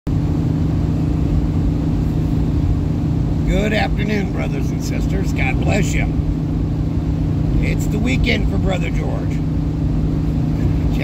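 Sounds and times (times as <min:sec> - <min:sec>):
engine and road rumble: 0:00.0 - 0:11.0
constant hum: 0:00.1 - 0:11.0.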